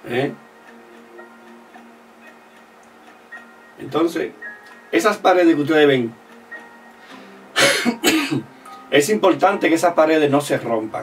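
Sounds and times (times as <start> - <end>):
faint background music: 0.0 - 11.0
man coughing: 7.6 - 8.4.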